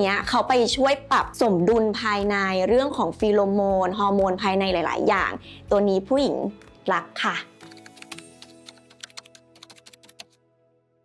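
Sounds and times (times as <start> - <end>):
soft background music: 0.0 - 11.0
keyboard typing: 7.6 - 10.4.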